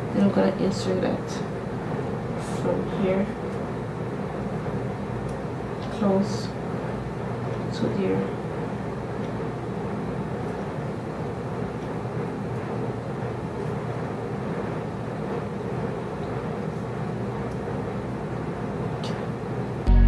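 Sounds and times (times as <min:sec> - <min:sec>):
steady background noise: 0:00.0 - 0:19.9.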